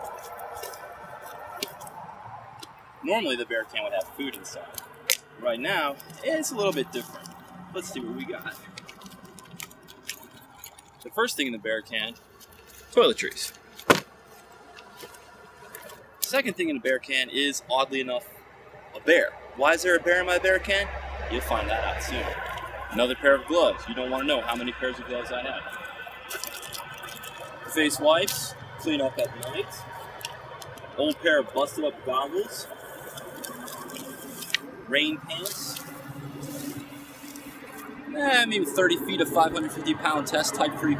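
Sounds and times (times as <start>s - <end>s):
distant highway traffic: 0.0s - 40.9s.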